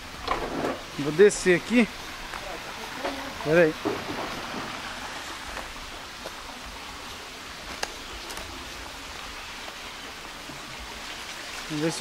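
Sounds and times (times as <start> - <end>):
stream spilling over dam: 0.0 - 12.0.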